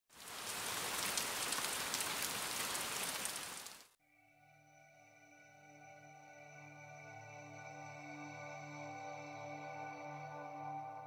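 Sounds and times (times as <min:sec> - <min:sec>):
rain-like hiss with crackles: 0:00.1 - 0:04.0.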